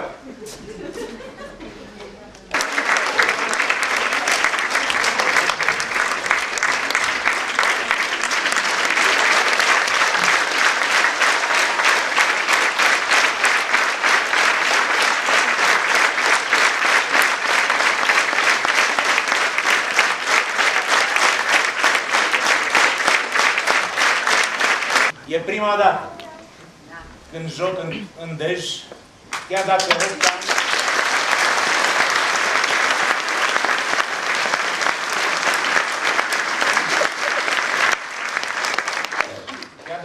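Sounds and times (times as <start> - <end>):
audience applauding: 2.5 - 25.2, 29.3 - 40.0.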